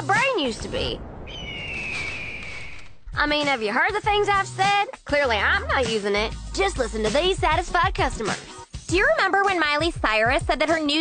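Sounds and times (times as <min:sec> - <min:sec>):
speech: 0:00.0 - 0:01.0, 0:03.2 - 0:11.0.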